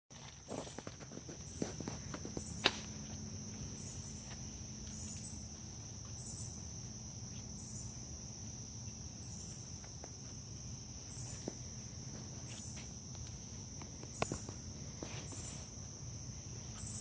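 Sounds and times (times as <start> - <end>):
footsteps: 0.1 - 6.2, 11.2 - 15.8
insects droning: 0.1 - 17.0
pulsing higher insect call: 0.4 - 17.0.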